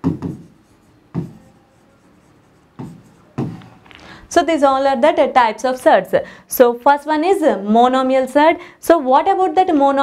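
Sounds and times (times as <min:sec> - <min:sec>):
pen scratching on display board: 0:00.0 - 0:03.7.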